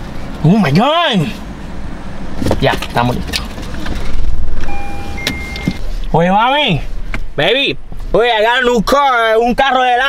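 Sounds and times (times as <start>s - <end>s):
car engine rumble inside cabin: 0.0s - 10.0s
car electronic chime: 4.6s - 5.8s.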